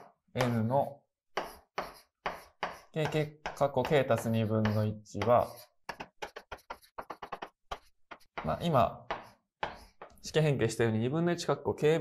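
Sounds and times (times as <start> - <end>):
chalk scraping on blackboard: 0.0 - 10.2.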